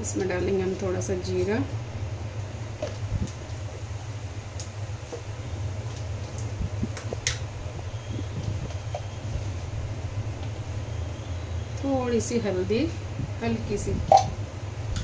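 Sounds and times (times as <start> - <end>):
seeds sizzling in hot oil: 0.0 - 12.3
low hum: 0.0 - 15.0.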